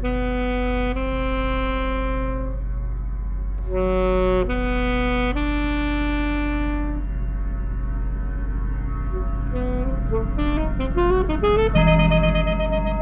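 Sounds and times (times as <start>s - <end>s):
alto saxophone notes: 0.0s - 2.7s, 3.6s - 7.1s, 9.2s - 13.0s
steady low drone: 0.0s - 13.0s.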